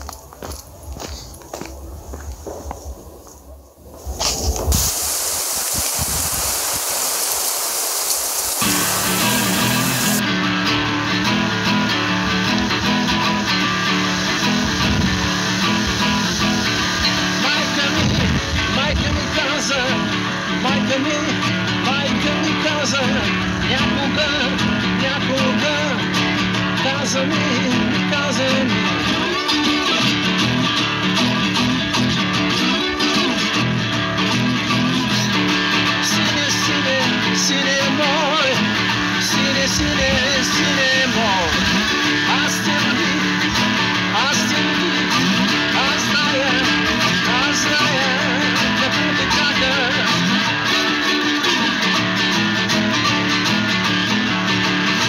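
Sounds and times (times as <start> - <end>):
outdoor hiss: 0.0 - 55.0
acoustic blues slide guitar: 8.6 - 55.0.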